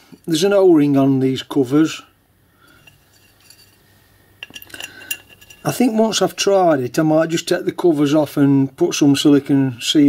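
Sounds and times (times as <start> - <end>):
metal cover clinking and scraping: 2.7 - 6.2.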